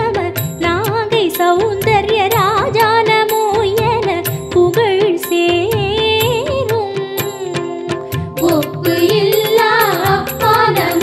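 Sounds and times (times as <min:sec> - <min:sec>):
devotional song melody: 0:00.0 - 0:11.0
steady drum beat: 0:08.0 - 0:11.0.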